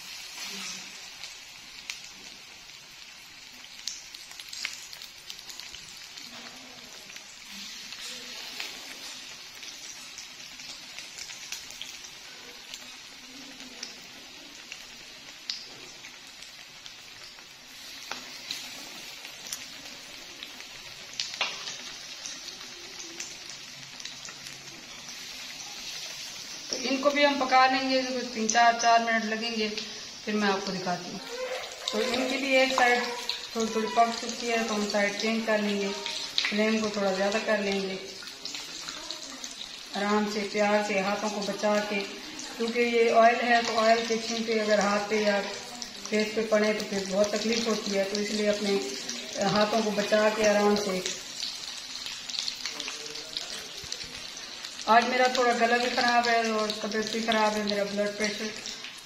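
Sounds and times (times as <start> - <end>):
hot oil sizzling in a pan: 0.0 - 59.0
spatula turning food: 0.1 - 1.1.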